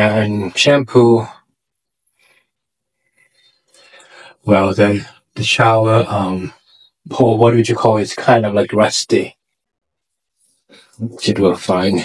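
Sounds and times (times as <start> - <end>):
soft breath: 2.0 - 4.4.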